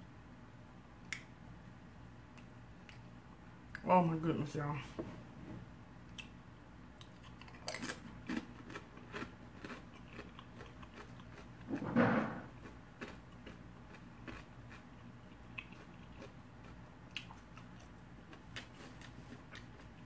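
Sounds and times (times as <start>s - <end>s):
crunching tortilla chips: 7.0s - 11.8s, 12.5s - 20.0s.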